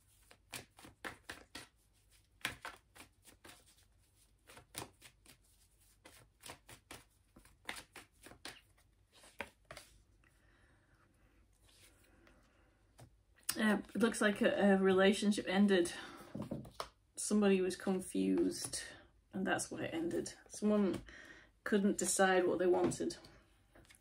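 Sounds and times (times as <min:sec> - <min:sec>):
cards being shuffled: 0:00.0 - 0:10.1, 0:16.4 - 0:17.0.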